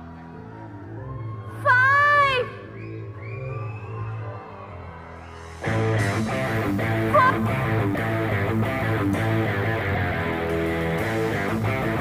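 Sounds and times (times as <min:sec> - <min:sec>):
live band playing: 0:05.6 - 0:12.0.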